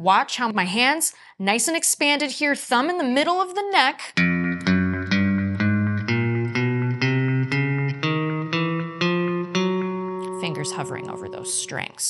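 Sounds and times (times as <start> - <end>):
electric guitar single notes: 4.2 - 12.0.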